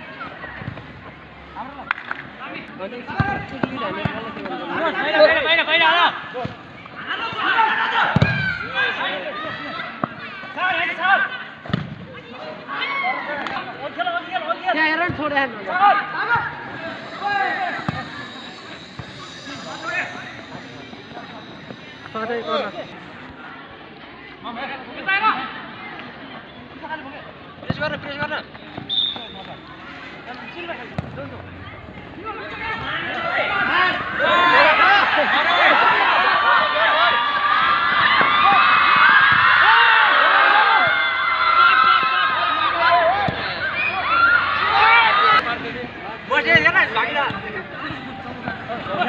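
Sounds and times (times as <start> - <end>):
voices calling out: 15.4 - 24.0, 28.5 - 49.0
people shouting: 15.7 - 23.2, 32.3 - 45.4
ball kicked thuds: 31.0 - 31.2.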